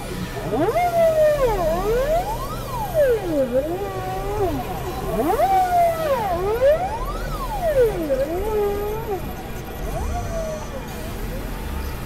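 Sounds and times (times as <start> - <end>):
gliding synthesizer tones: 0.0 - 12.0
low rumbling drone: 0.0 - 12.0.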